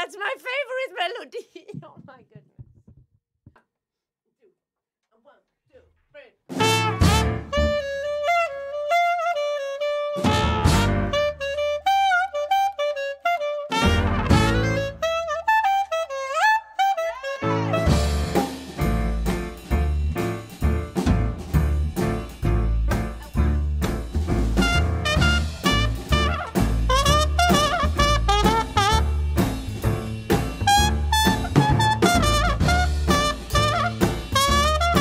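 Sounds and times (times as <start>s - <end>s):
lead horn melody: 6.5s - 18.6s, 24.6s - 29.4s, 30.6s - 35.0s
jazz band playing blues: 6.5s - 35.0s.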